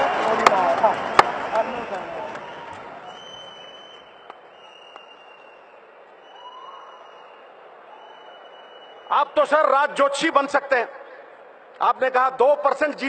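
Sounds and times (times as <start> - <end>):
faint audience applause: 0.0 - 9.3.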